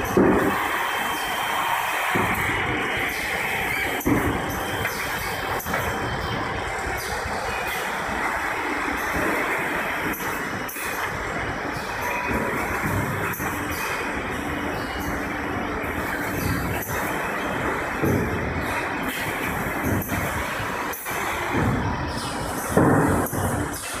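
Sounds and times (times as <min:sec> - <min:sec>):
roller conveyor rumble: 0:00.0 - 0:24.0.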